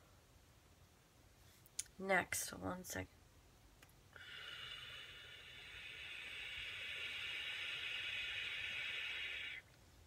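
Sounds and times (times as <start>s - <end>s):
vape hiss: 4.1s - 9.8s.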